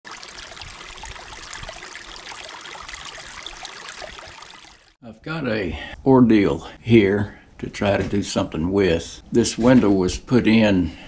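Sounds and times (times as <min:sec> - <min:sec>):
stream running over rocks: 0:00.0 - 0:05.0.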